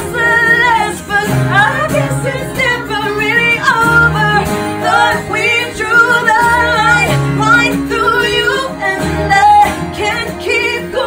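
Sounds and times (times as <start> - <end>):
acoustic guitar: 0.0 - 11.0
backing singer: 0.0 - 11.0
woman singing: 0.0 - 11.0.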